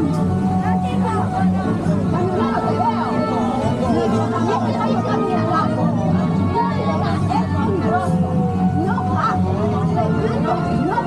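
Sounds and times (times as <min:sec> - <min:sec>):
background music with held tones: 0:00.0 - 0:11.0
people chattering: 0:00.0 - 0:11.0.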